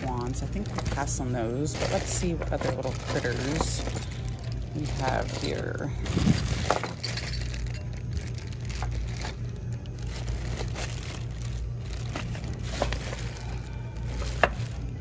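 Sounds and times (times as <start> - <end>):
plastic bags crinkling: 0.0 - 15.0
steady low hum: 0.0 - 15.0.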